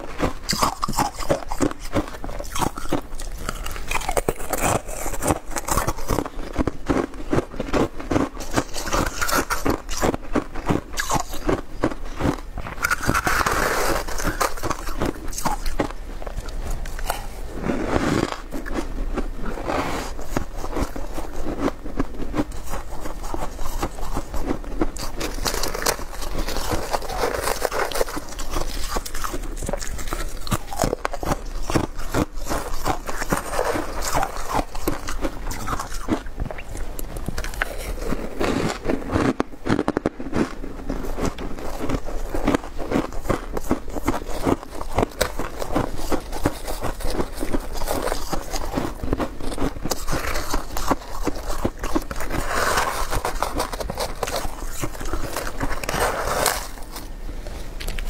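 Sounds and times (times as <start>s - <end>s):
crunching and chewing frost: 0.0s - 58.0s
spoon scraping frost off ice: 49.9s - 57.1s.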